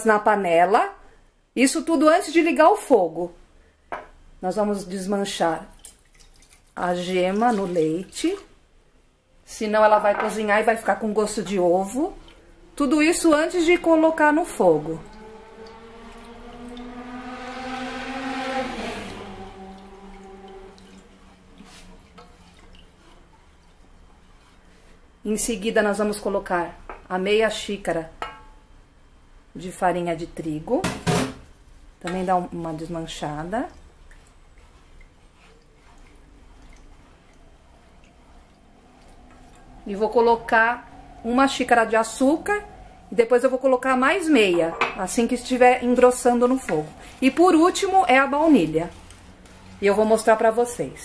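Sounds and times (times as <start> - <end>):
humming tone with overtones: 12.4 - 22.4, 37.2 - 44.2
wooden spatula stirring liquid: 18.4 - 25.2, 31.5 - 43.3, 44.4 - 50.5.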